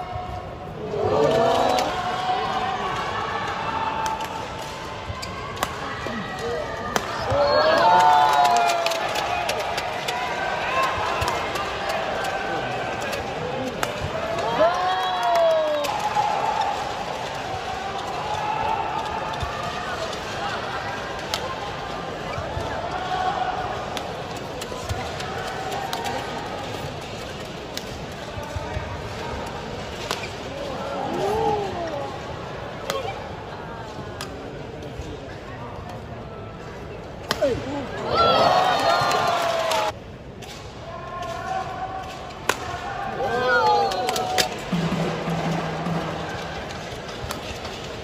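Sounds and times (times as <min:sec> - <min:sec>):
murmur of crowd voices: 0:00.0 - 0:48.0.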